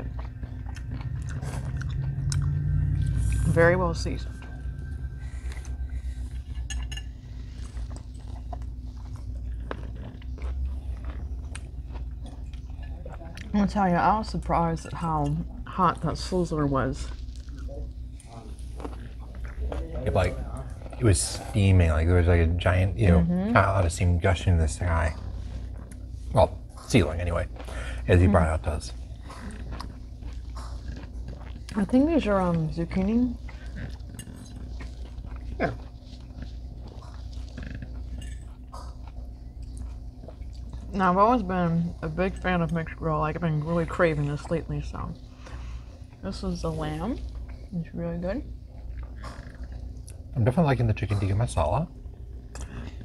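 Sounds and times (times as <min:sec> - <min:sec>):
low room hum: 0:00.0 - 0:53.0
people chewing food: 0:00.0 - 0:53.0.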